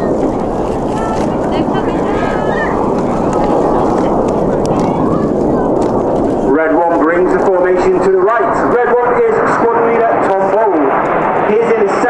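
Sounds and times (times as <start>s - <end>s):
faint voices: 0.0s - 12.0s
jet engines overhead: 0.0s - 12.0s.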